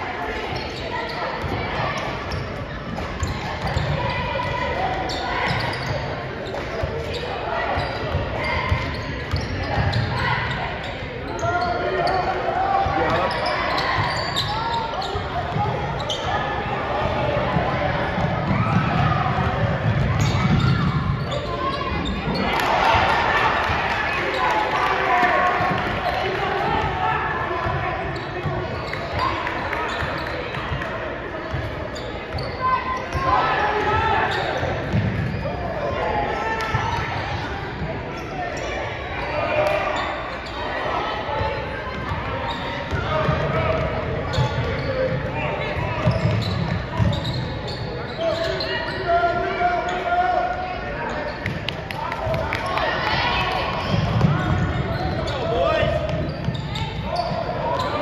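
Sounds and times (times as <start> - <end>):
people shouting and chattering: 0.0 - 58.0.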